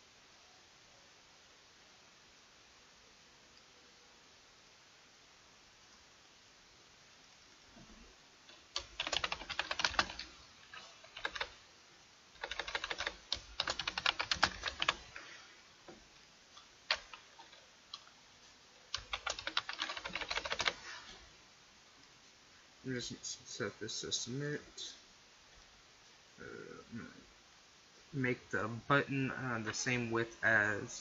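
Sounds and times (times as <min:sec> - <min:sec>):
typing on computer keyboard: 0:08.7 - 0:11.6, 0:12.4 - 0:15.2, 0:16.9 - 0:18.0, 0:18.9 - 0:20.8.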